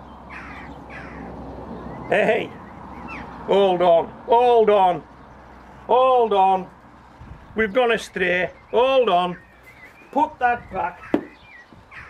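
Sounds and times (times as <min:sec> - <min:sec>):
bird calling: 0:00.0 - 0:12.0.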